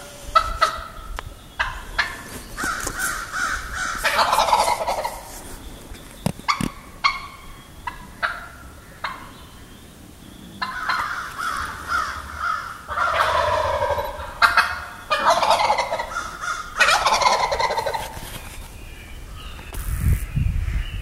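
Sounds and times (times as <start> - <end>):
turkeys gobbling: 0.0 - 1.0, 1.6 - 9.6, 10.6 - 18.4.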